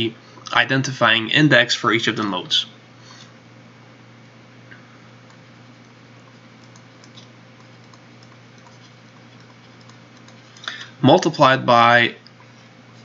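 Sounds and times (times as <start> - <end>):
low electrical hum and hiss: 0.0 - 13.0
stylus tapping on tablet: 6.6 - 10.5.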